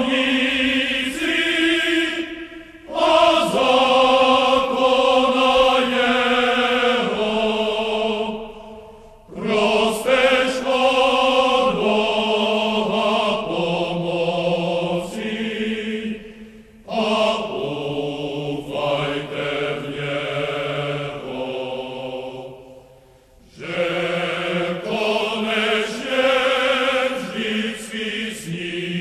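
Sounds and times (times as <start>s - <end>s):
slow chanted singing: 0.0s - 29.0s.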